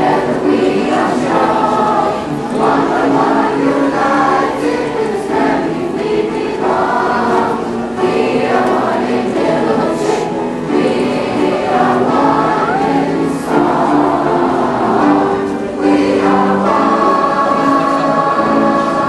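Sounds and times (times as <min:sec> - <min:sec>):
children's choir singing: 0:00.0 - 0:19.0.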